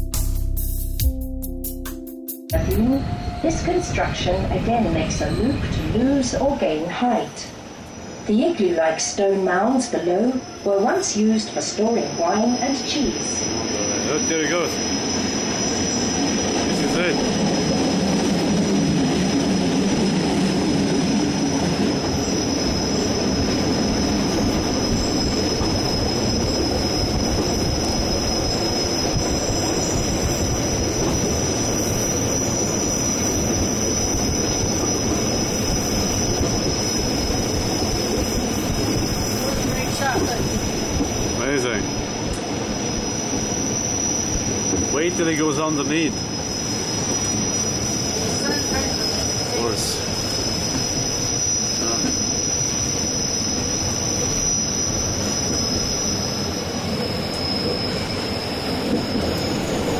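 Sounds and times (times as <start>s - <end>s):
train wheels rumbling on rails: 2.5s - 59.9s.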